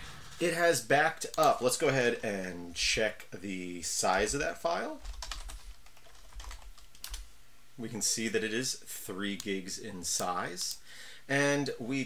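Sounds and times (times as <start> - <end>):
keyboard typing: 5.0 - 7.2.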